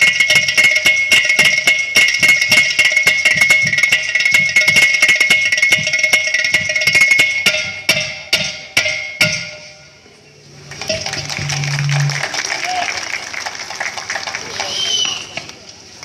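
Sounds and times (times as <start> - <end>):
steady high ringing tone: 0.0 - 12.3
hand drums and clay-pot drum playing: 0.0 - 12.5.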